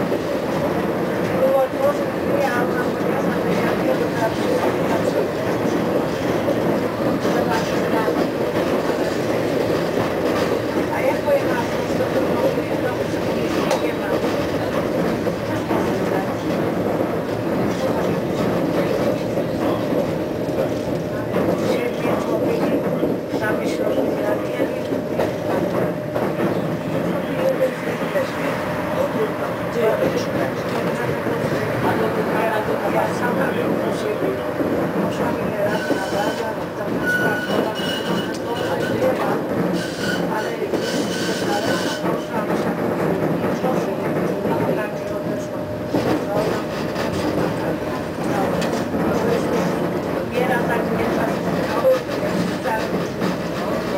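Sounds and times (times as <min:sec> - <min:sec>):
tram wheels rumbling on rail: 0:00.0 - 0:53.9
high-pitched wheel squeals: 0:37.0 - 0:38.9, 0:39.8 - 0:42.0.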